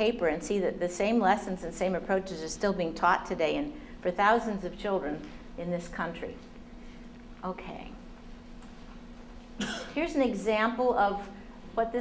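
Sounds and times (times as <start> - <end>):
steady low hum: 0.0 - 12.0
short cough: 9.6 - 10.0.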